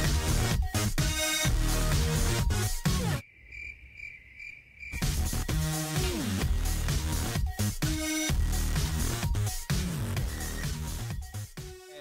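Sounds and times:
electronic music: 0.0 - 3.2, 5.0 - 12.0
cricket chirping: 3.2 - 5.2.

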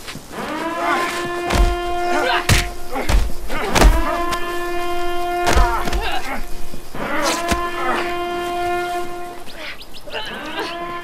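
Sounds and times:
heavy thud: 1.4 - 6.3.

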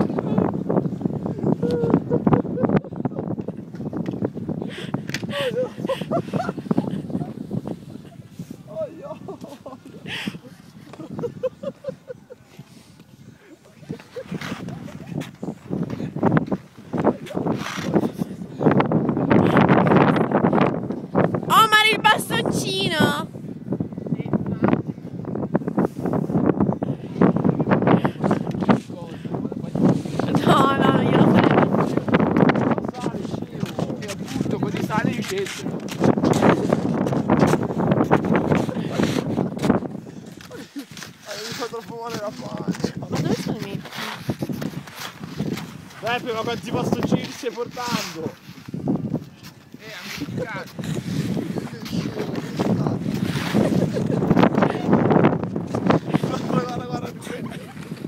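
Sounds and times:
wind buffeting microphone: 0.0 - 58.0
person laughing: 1.6 - 3.2, 5.2 - 7.4, 9.0 - 12.6, 38.6 - 39.2, 53.5 - 55.0, 57.2 - 57.9.

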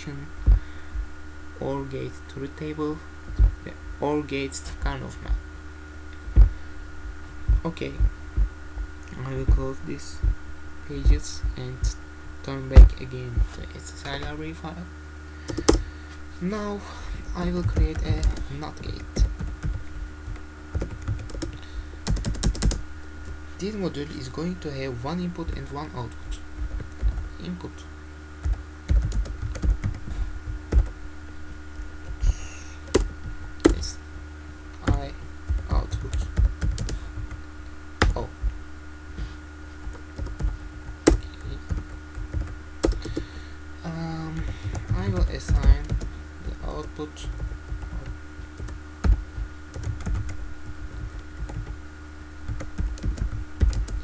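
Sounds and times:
person's voice: 0.0 - 0.4, 1.6 - 5.4, 7.5 - 8.1, 9.0 - 14.9, 16.4 - 19.4, 23.6 - 26.4, 27.0 - 27.9, 33.6 - 34.0, 34.8 - 36.4, 38.0 - 38.5, 41.2 - 41.8, 43.8 - 48.2
computer keyboard keystrokes: 19.2 - 22.8, 28.4 - 30.0, 32.8 - 33.8, 34.8 - 37.4, 47.3 - 50.4, 51.0 - 51.7, 52.5 - 54.0.

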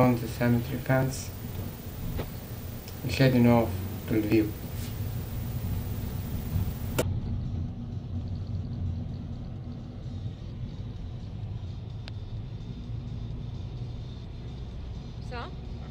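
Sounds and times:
engine and road rumble: 0.0 - 15.9
sharp click: 2.1 - 3.0.

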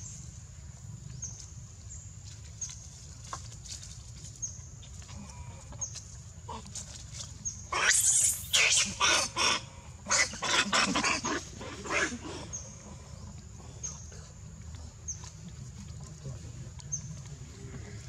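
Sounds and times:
baby monkey screaming: 7.7 - 12.3.

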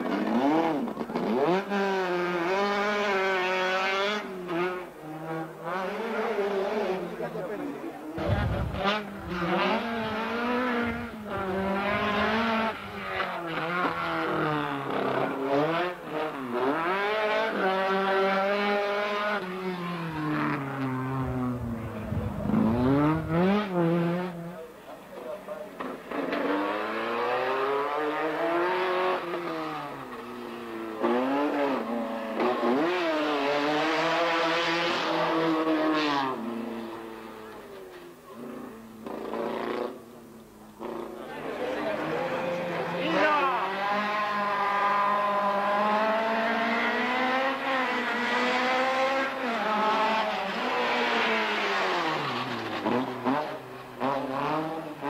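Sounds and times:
race car engine revving: 0.0 - 37.8, 38.4 - 55.0.

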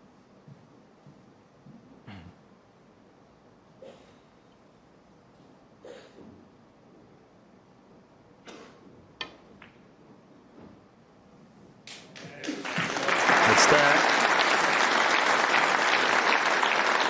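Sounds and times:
audience applause: 12.2 - 17.0.

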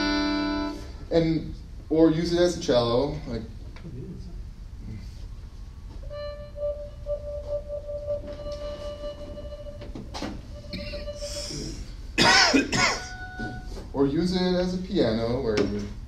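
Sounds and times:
synthesized cello notes: 0.0 - 1.4, 6.0 - 12.2, 13.0 - 14.6
loud cough: 12.2 - 13.1.

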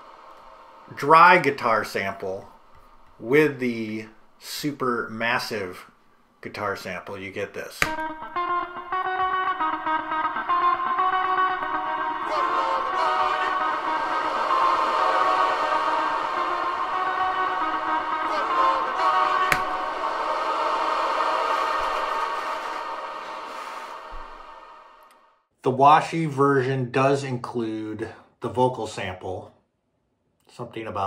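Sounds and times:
funk guitar chords with reverb: 8.0 - 19.9
vocal snippet: 9.9 - 25.2.

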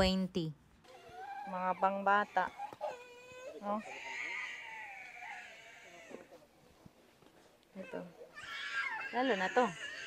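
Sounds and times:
small child whimpering: 0.9 - 6.4, 7.8 - 10.0.

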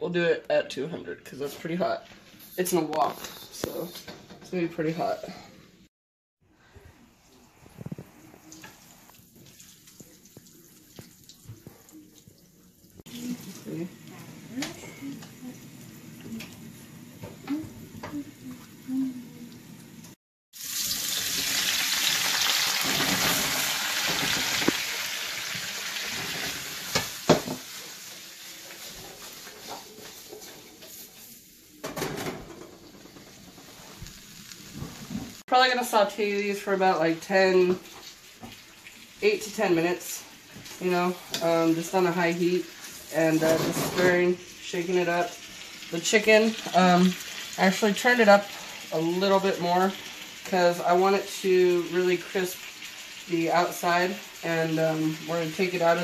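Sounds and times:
vegetables sizzling in hot oil: 20.6 - 56.0.

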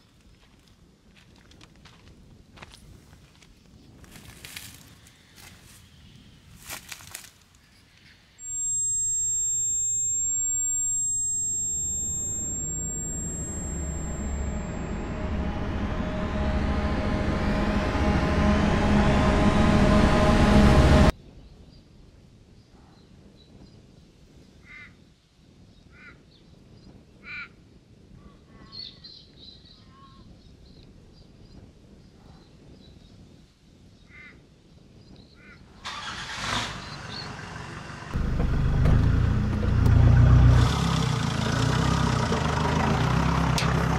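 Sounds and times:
quiet outdoor ambience: 0.0 - 41.6
high ringing tone: 8.4 - 21.1
rising swell: 8.4 - 21.1.

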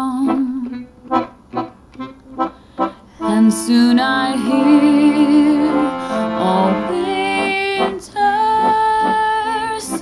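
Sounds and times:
instrumental notes from loudspeaker: 3.2 - 10.0.

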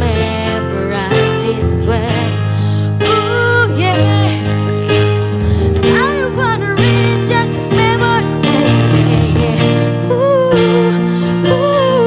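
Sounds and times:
electric keyboard: 0.0 - 12.0
strummed acoustic guitar: 0.0 - 12.0
woman singing a ballad: 0.0 - 12.0.

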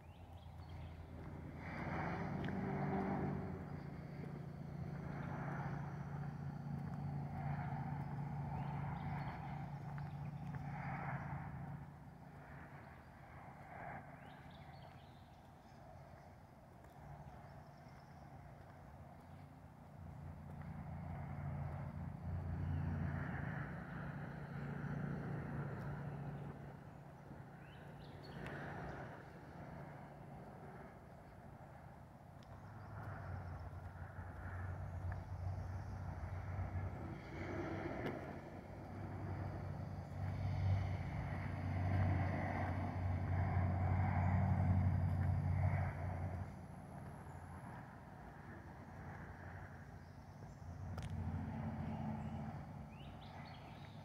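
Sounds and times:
vehicle engine droning: 0.0 - 12.8, 32.4 - 54.0.

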